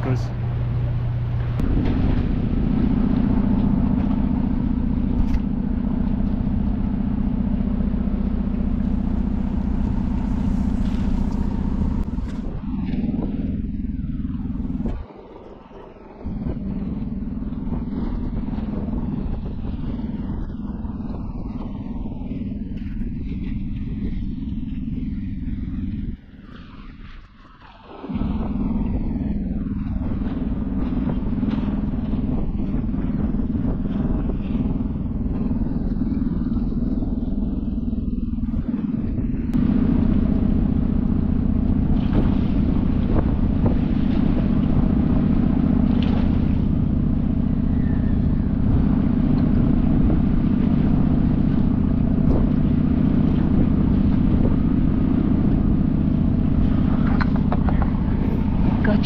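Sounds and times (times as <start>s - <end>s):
low mechanical drone: 0.0s - 59.0s.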